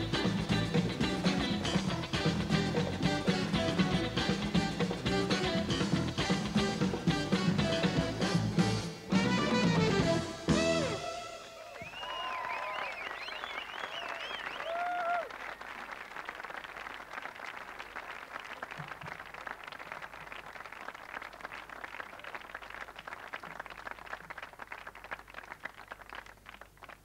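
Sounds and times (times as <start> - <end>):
whistling: 11.6 - 15.7
audience applauding: 11.6 - 27.0.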